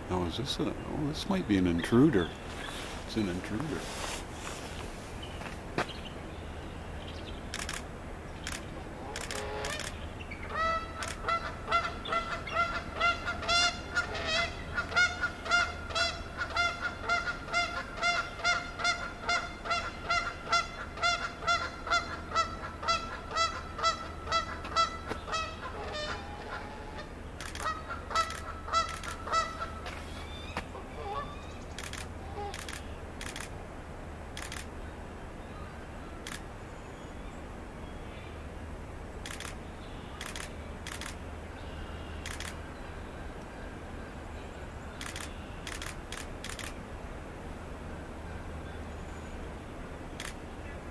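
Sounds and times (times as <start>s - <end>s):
sharp clicks: 7.5s - 10.0s, 11.0s - 11.2s, 27.4s - 29.2s, 31.7s - 33.6s, 34.4s - 34.7s, 39.2s - 39.6s, 40.2s - 41.2s, 42.2s - 42.6s, 45.0s - 46.8s, 50.2s - 50.4s
bird calling repeated notes: 8.4s - 33.5s.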